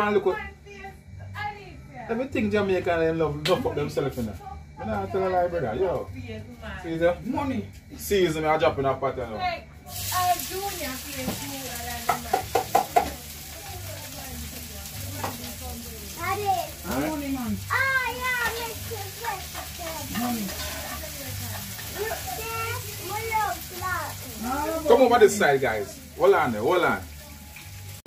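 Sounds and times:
seasoning sizzling in a pan: 9.8 - 28.0.

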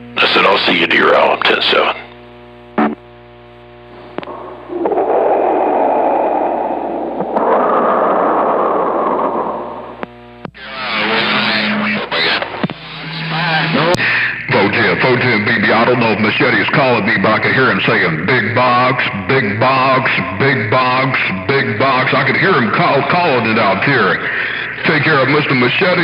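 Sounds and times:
garbled radio voices: 0.0 - 2.2, 4.1 - 26.0
rushing radio noise: 0.0 - 2.2, 2.8 - 26.0
low hum: 1.4 - 26.0
steady whistling tones: 4.3 - 10.0.

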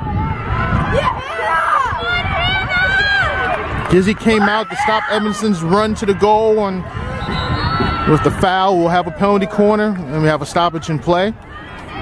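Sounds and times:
girls and women shouting: 0.0 - 3.6.

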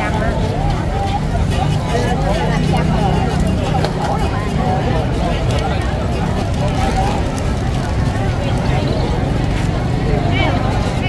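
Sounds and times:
street chatter: 0.0 - 11.0.

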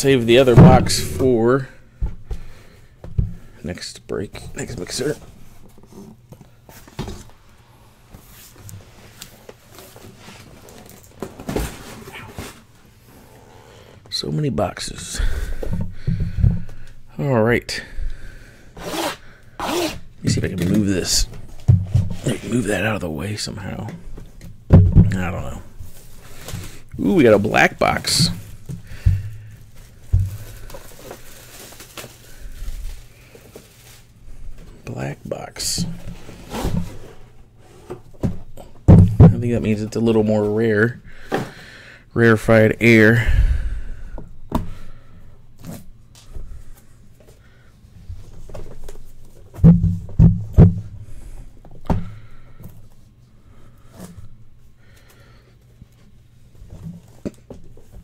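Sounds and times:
cardboard rustling and scraping: 8.2 - 12.8, 25.1 - 34.1, 35.9 - 38.4.

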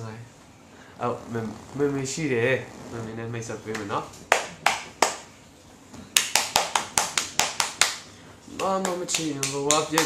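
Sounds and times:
hand claps: 3.7 - 5.3, 6.1 - 10.0.

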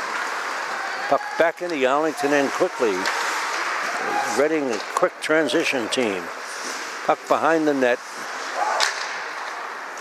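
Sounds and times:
indoor rink noise: 0.0 - 10.0.

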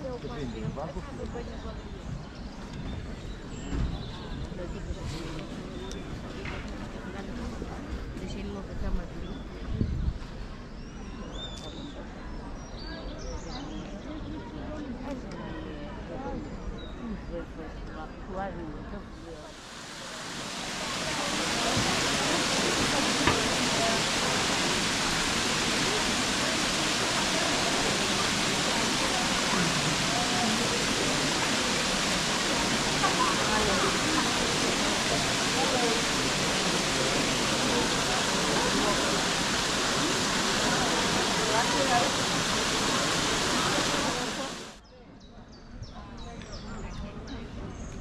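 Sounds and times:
fountains splashing into pool: 19.4 - 44.8.

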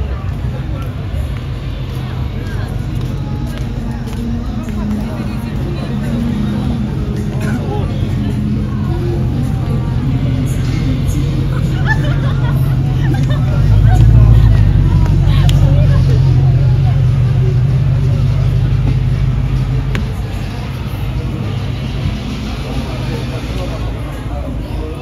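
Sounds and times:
street crowd chatter: 0.0 - 25.0
car engine passing close: 0.1 - 25.0.

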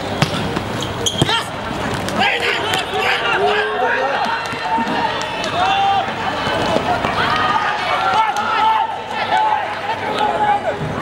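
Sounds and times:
people shouting: 2.2 - 11.0.

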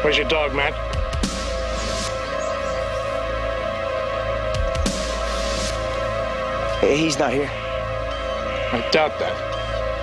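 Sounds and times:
synthesizer drone: 0.0 - 10.0.

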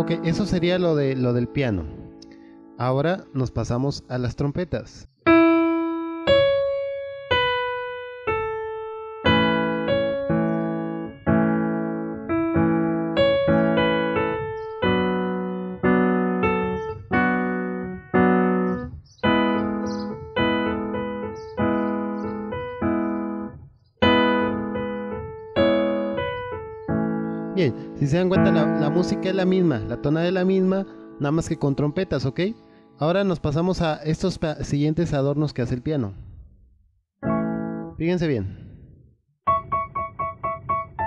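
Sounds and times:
keyboard trumpet melody: 0.0 - 3.2, 5.3 - 32.5, 37.2 - 38.0
keyboard chords: 0.0 - 34.4, 37.2 - 38.8, 39.5 - 41.0.

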